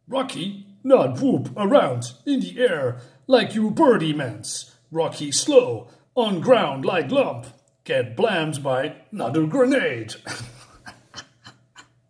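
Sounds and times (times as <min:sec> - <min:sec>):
man's breathy suppressed laughter: 0:10.2 - 0:12.0.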